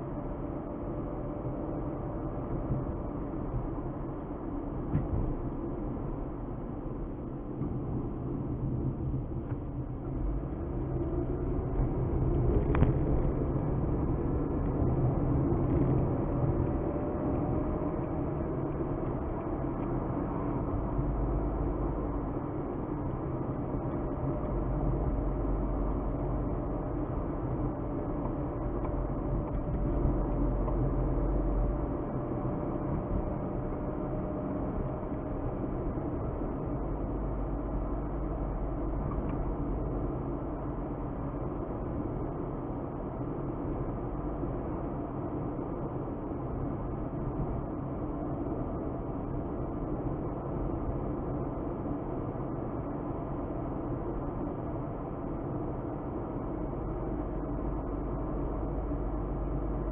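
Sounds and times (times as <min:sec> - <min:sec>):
car engine and tyre rumble: 0:00.0 - 0:59.9.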